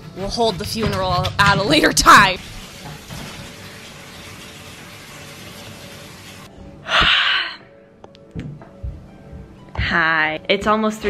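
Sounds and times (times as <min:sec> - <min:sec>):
water running from tap: 0:00.3 - 0:06.5.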